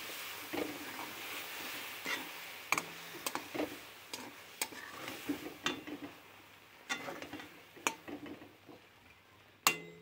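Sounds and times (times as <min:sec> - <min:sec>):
faint sizzle: 0:00.0 - 0:10.0.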